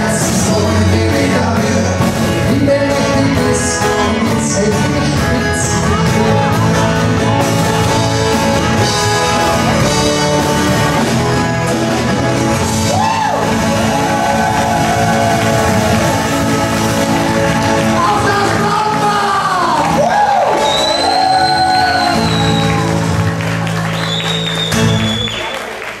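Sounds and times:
person singing: 0:00.0 - 0:07.4
electric bass: 0:00.0 - 0:25.4
acoustic guitars: 0:00.0 - 0:25.6
drum kit: 0:00.0 - 0:25.9.

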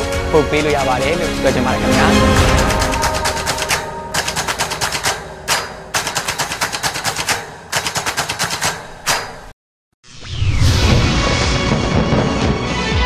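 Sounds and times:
rapid shot-like clicks: 0:02.5 - 0:09.6.

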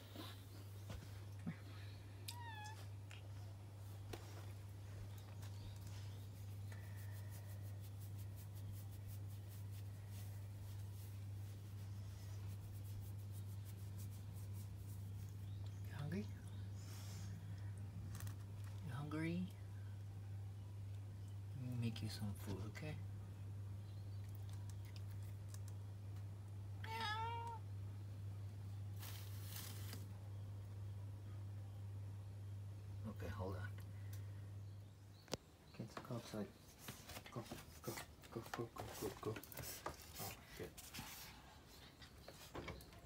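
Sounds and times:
cat meowing: 0:02.3 - 0:02.8, 0:26.8 - 0:27.6
hand stroking cat fur: 0:05.9 - 0:15.3.

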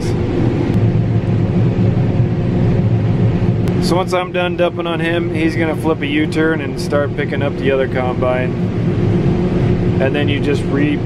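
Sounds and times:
combine harvester running: 0:00.0 - 0:11.0.

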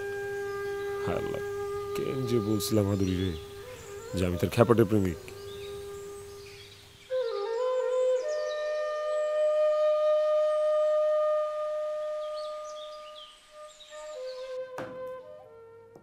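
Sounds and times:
slow flute melody: 0:00.0 - 0:16.0.

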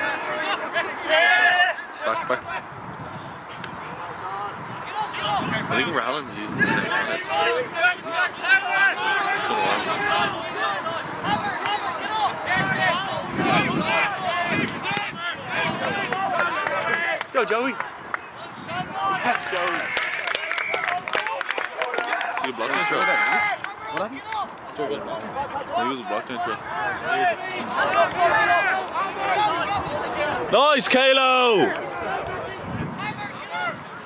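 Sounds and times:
players and spectators shouting: 0:00.0 - 0:02.7, 0:03.9 - 0:34.0.

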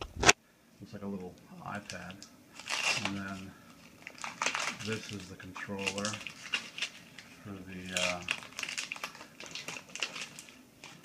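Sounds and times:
tape peeling off crackling: 0:01.8 - 0:11.0.

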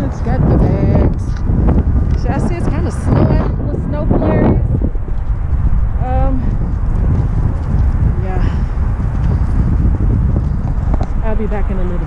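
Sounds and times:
woman's voice: 0:00.0 - 0:01.4, 0:02.2 - 0:04.7, 0:06.0 - 0:06.6, 0:08.2 - 0:08.7, 0:11.2 - 0:12.0
strong wind buffeting microphone: 0:00.0 - 0:12.0.

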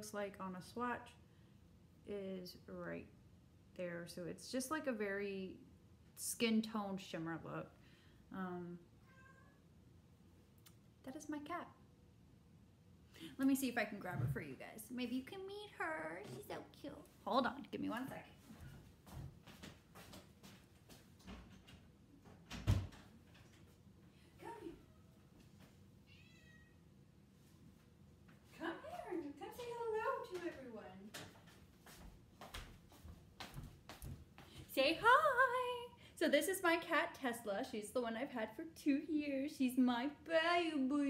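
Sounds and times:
cat meowing: 0:09.0 - 0:09.6, 0:26.1 - 0:26.8.

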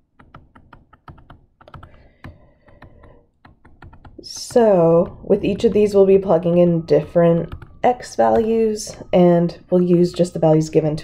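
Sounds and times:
stylus tapping on tablet screen: 0:00.0 - 0:06.1.

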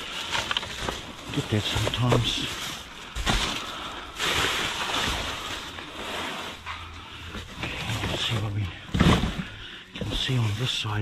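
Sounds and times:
plastic bags rustling and crinkling: 0:00.0 - 0:11.0.

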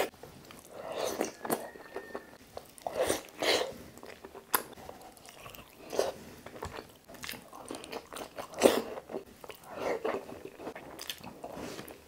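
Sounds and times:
close chewing: 0:00.0 - 0:12.0.

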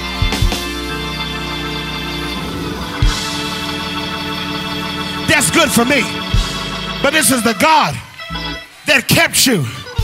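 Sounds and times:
sustained organ chords: 0:00.0 - 0:09.0.

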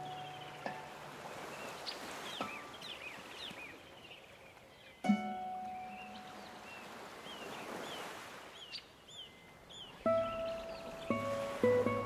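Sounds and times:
ocean waves washing in: 0:00.0 - 0:03.7, 0:05.9 - 0:08.8, 0:09.8 - 0:12.0
bird chirps: 0:00.0 - 0:12.0
classical guitar plucking notes: 0:05.0 - 0:06.5, 0:10.0 - 0:12.0.

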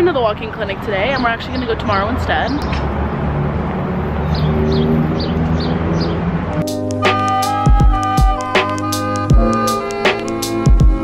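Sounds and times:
street traffic: 0:00.0 - 0:10.8.

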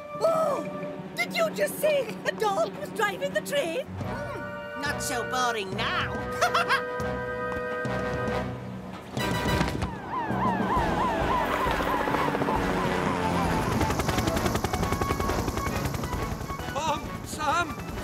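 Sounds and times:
background music: 0:00.0 - 0:18.0
helicopter rotor chop: 0:09.2 - 0:18.0
cartoon siren yelping: 0:10.0 - 0:13.8.

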